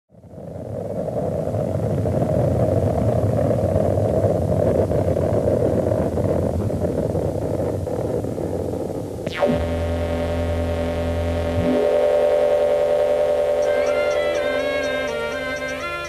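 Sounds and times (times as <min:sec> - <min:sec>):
rushing rumbling noise drone: 0:09.2 - 0:16.0.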